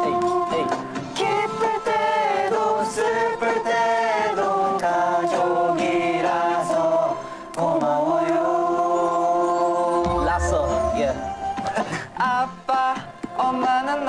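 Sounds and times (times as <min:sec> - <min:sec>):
group of men singing in unison: 0:00.0 - 0:14.0.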